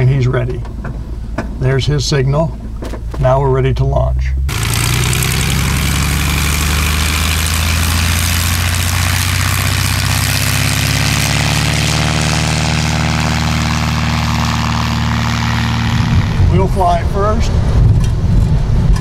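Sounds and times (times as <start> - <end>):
propeller plane engine drone: 3.8 - 19.0.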